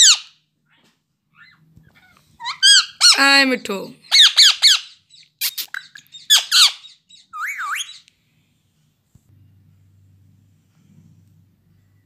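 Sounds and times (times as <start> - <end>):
parakeet chirping: 0.0 - 0.4, 2.4 - 8.1.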